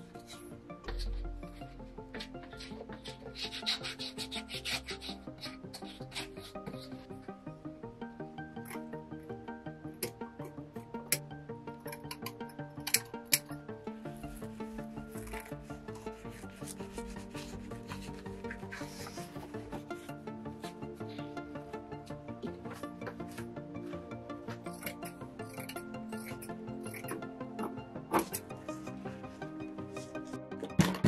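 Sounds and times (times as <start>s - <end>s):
background music: 0.0s - 31.0s
hand tool rubbing leather: 0.1s - 7.1s, 14.3s - 21.2s
hands rubbing leather: 14.5s - 20.9s.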